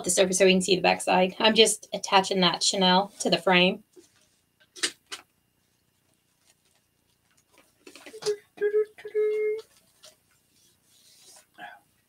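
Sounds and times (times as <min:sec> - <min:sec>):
faint rustling: 0:03.0 - 0:04.6, 0:05.6 - 0:08.2
person humming mm-hm: 0:08.1 - 0:09.6.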